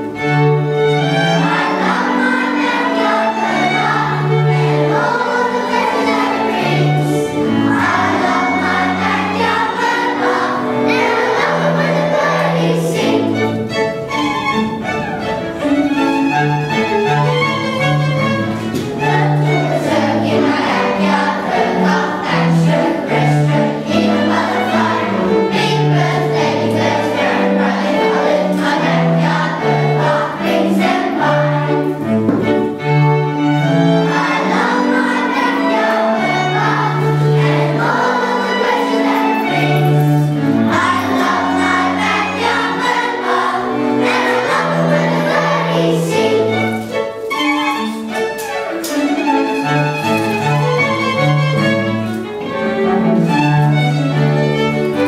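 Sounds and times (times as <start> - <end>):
children's choir singing: 0.0 - 55.0
string ensemble: 0.0 - 55.0.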